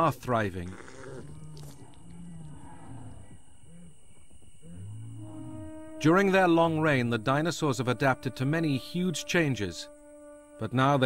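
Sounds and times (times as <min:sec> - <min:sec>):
low moo-like animal calls: 0:00.6 - 0:07.1.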